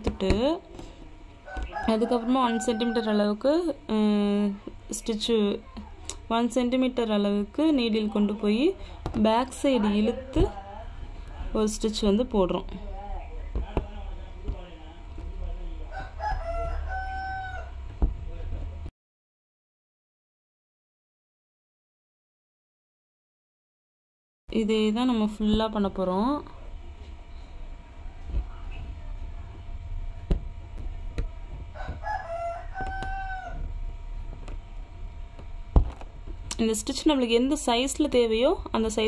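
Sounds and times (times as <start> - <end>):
rooster crowing: 1.4 - 3.2, 15.9 - 17.8, 31.7 - 33.7.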